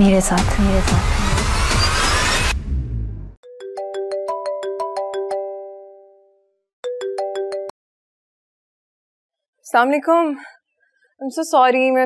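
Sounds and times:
phone ringtone plucked notes: 3.4 - 7.8.

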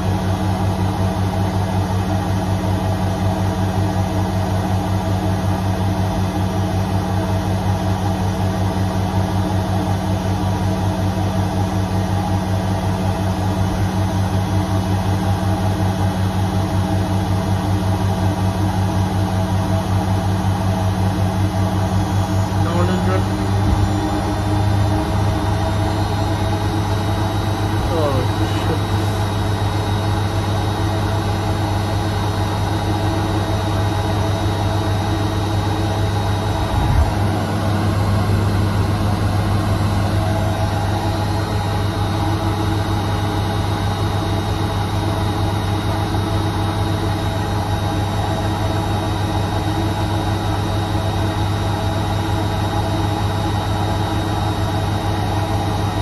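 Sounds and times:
washing machine spinning: 0.0 - 56.0.

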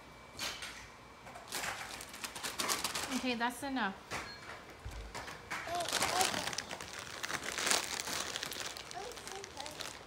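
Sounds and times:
plastic wipes packet crinkling: 1.5 - 3.4, 5.7 - 10.0.

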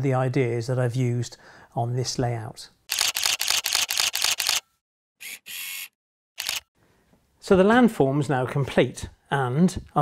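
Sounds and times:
camera shutter burst: 2.9 - 4.6, 5.2 - 6.7
camera shutter and mirror: 2.9 - 6.7.

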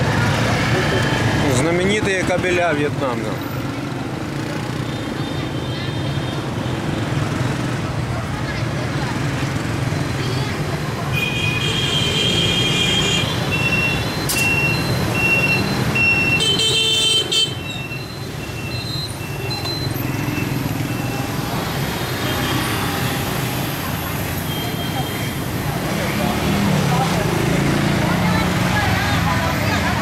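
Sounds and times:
motorbike engines humming: 0.0 - 30.0
motorbike horns beeping: 11.1 - 21.6.

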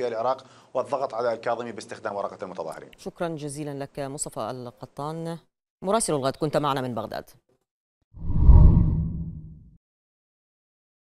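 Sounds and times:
deep transition whoosh: 8.2 - 9.7.

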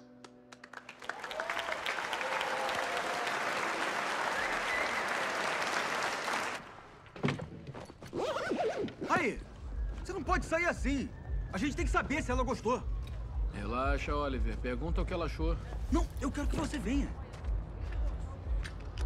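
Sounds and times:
audience applauding: 0.5 - 7.0.

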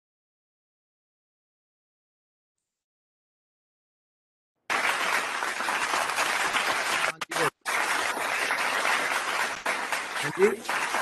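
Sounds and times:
crowd clapping: 4.7 - 11.0.

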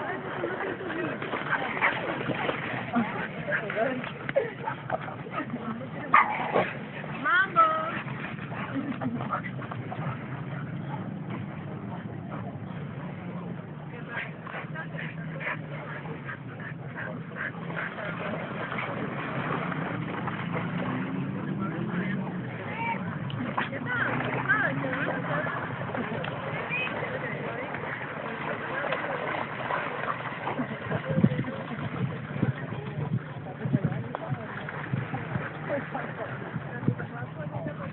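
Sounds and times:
dogs yipping and barking: 6.1 - 6.8.

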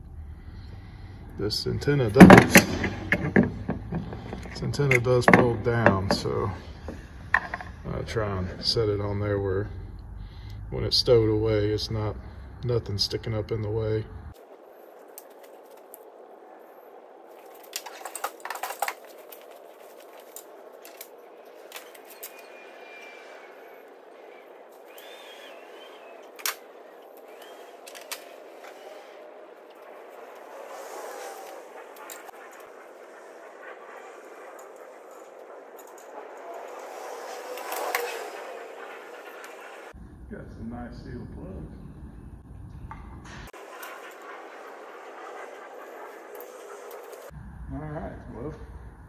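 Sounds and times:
rustling of cables: 14.4 - 16.3, 17.2 - 38.5.

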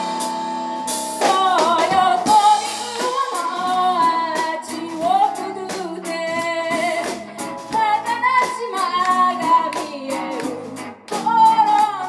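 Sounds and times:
drums with cymbal hits: 0.0 - 11.9
electric bass: 0.0 - 12.0
electric guitar: 0.0 - 12.0
keyboard: 0.0 - 12.0
woman singing with vibrato: 1.2 - 12.0.

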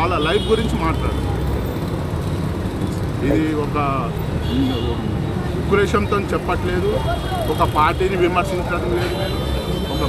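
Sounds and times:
road traffic rumble: 0.0 - 10.0.

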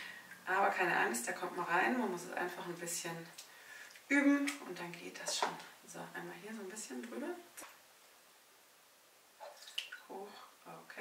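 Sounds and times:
water splashing and dripping in tub: 9.4 - 10.1.

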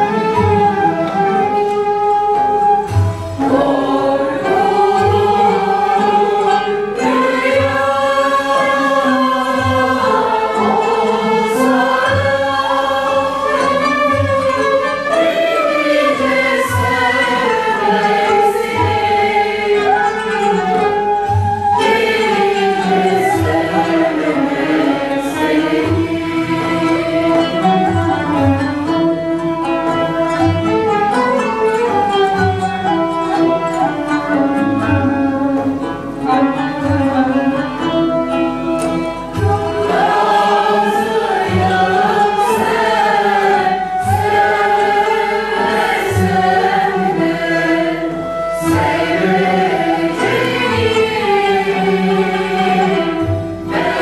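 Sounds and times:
mixed choir singing: 0.0 - 31.2, 38.4 - 54.0
oud and kanun ensemble: 0.0 - 54.0
violin: 0.0 - 54.0.

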